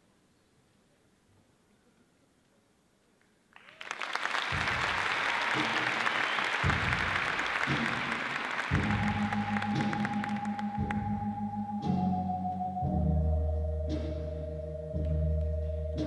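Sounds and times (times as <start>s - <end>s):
audience applause: 3.6s - 11.0s
music track with deep beat: 8.7s - 16.0s.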